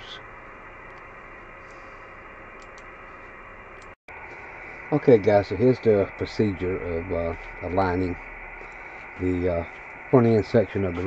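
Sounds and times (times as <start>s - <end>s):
low steady hiss: 0.0s - 11.0s
faint clicks: 2.6s - 2.9s.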